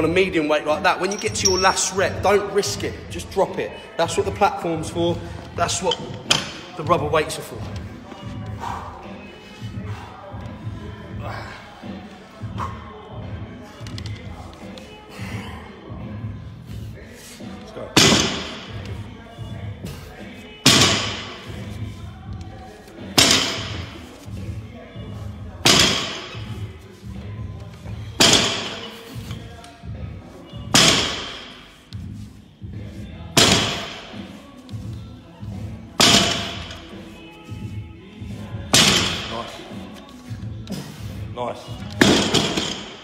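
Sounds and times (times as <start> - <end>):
background music: 0.0 - 43.0.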